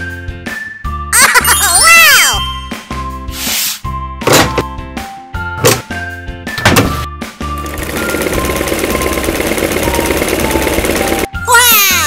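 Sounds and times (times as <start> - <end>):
sewing machine stitching: 7.6 - 11.3.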